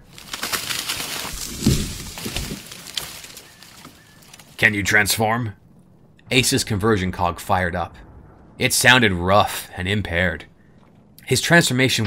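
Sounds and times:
twigs and leaves crackling: 0.0 - 5.6.

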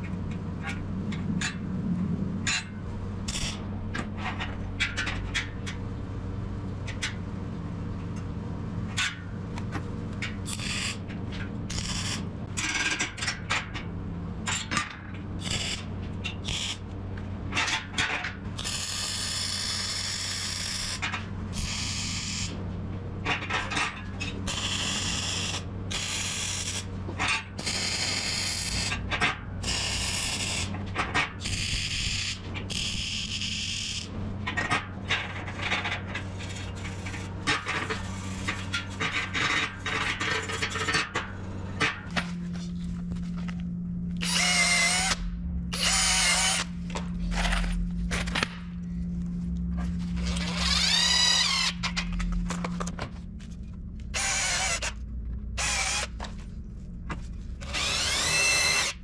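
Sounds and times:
power drill boring into wood: 44.2 - 46.6, 50.6 - 51.8, 54.2 - 54.9, 55.6 - 56.1, 57.7 - 59.0.

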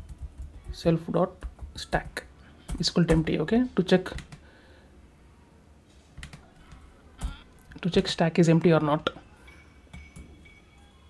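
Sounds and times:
computer keyboard keystrokes: 6.2 - 7.4.

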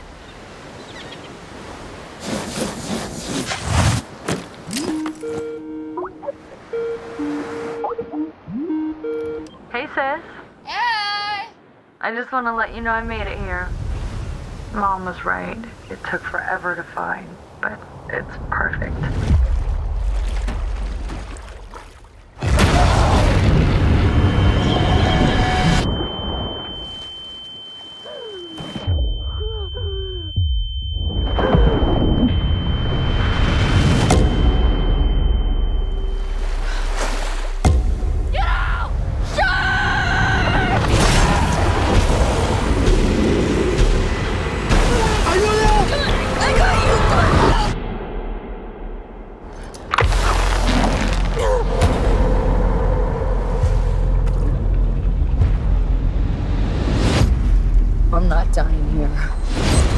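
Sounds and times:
high steady ringing tone: 24.0 - 36.7
low rumble: 28.8 - 39.4, 45.8 - 49.7, 51.3 - 59.6.

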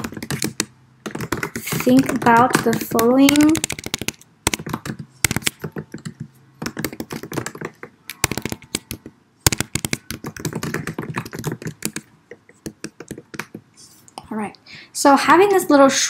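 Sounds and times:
typing on computer keyboard: 0.0 - 13.7.

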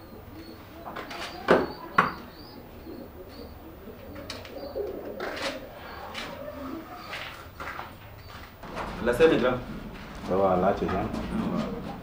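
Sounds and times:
bird cooing: 0.0 - 7.5.

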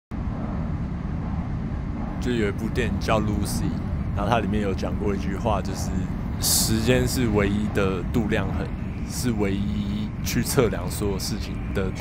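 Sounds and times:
low rumble of background noise: 0.1 - 12.0.

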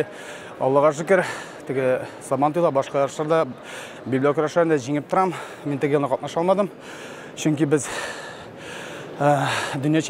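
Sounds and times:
man breathing in: 0.1 - 0.6, 6.8 - 9.8
man speaking: 0.6 - 8.2, 9.2 - 10.0.

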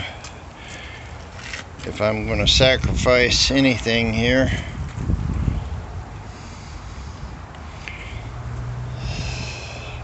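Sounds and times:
person exhaling through nose: 8.9 - 10.0.

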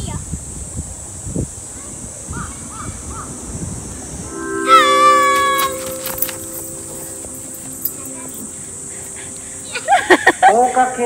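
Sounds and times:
loudspeaker chime melody: 4.3 - 10.6.

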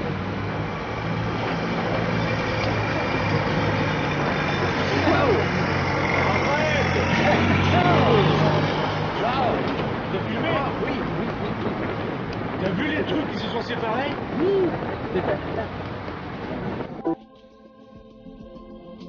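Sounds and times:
voices: 1.3 - 16.2.

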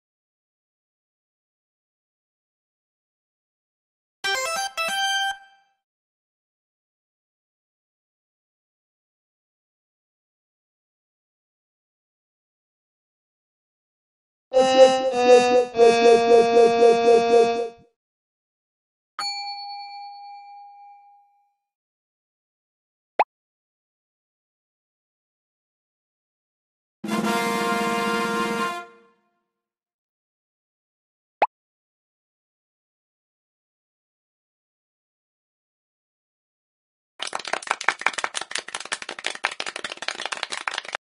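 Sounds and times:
bell-like ding: 19.2 - 21.5.

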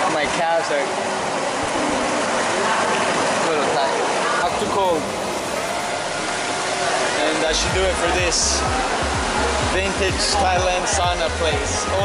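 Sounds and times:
hot tub water bubbling: 0.0 - 12.0.

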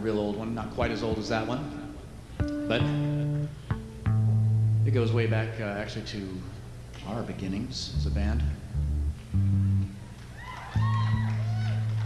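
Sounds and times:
guitar notes plucked: 1.1 - 5.3, 8.0 - 10.0.

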